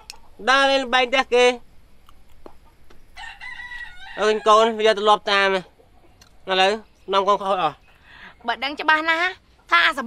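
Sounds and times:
rooster crowing: 3.1s - 4.8s.

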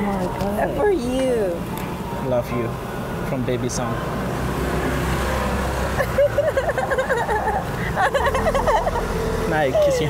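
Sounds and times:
street traffic rumble: 0.0s - 10.0s
woman laughing: 6.0s - 9.1s.

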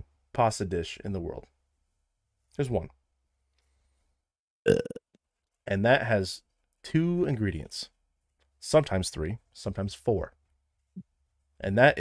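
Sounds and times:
man burping: 4.7s - 5.2s.

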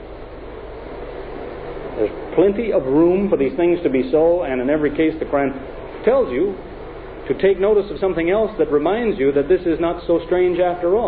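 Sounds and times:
background hiss: 0.0s - 11.0s
low hum: 0.0s - 11.0s.

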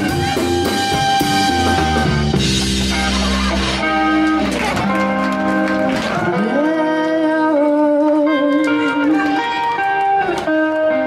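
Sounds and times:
live band with guitar: 0.0s - 11.0s.

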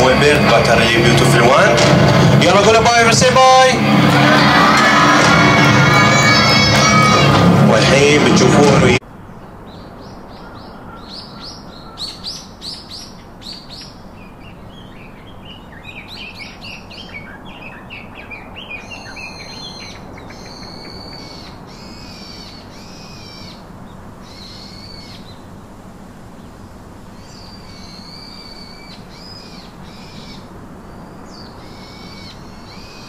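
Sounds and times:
birds chirping high: 9.1s - 33.0s
longer even bird calls: 9.4s - 25.5s, 27.1s - 33.0s.

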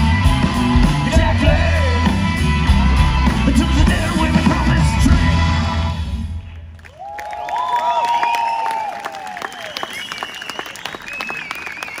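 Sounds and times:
rock band chord: 0.0s - 6.3s
audience clapping: 6.4s - 12.0s
audience cheering: 6.8s - 12.0s
whistles: 7.5s - 12.0s.

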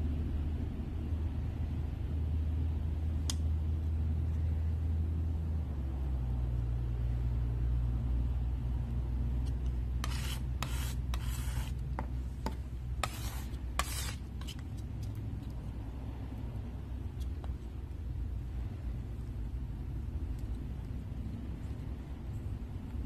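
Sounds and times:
steady low hum: 0.0s - 23.0s
paint knife scraping paint: 9.4s - 15.5s.

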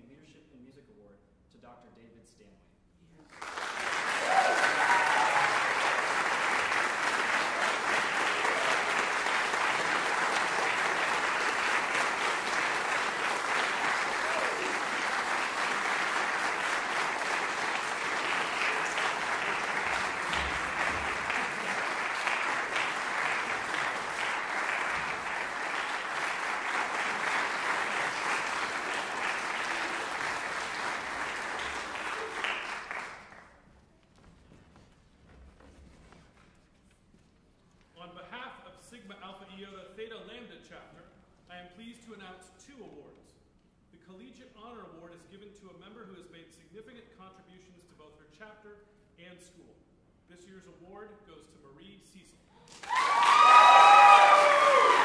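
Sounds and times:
audience applauding: 3.2s - 33.6s, 52.6s - 55.0s.

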